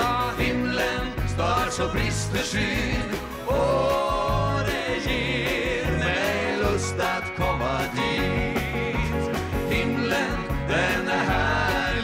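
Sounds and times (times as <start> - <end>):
accordion: 0.0 - 12.0
guitar: 0.0 - 12.0
male voices singing: 0.0 - 12.0
steady bass line: 0.0 - 12.0.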